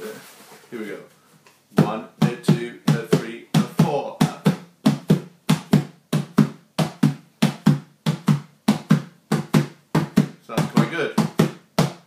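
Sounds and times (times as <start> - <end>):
hands slapping plastic container: 1.8 - 12.0.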